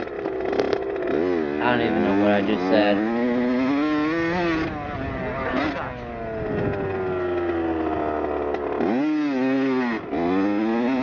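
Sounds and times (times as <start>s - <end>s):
dirt bike engine revving: 0.0s - 11.0s.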